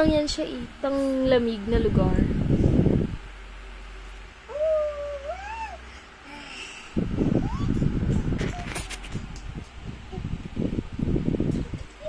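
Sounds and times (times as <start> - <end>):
child's high-pitched ooh: 4.5 - 6.4.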